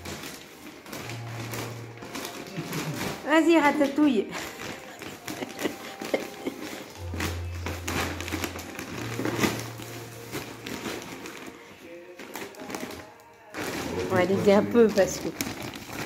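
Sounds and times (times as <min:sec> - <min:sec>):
music playing: 0:00.0 - 0:15.4
wrapping paper crinkling: 0:00.0 - 0:16.0.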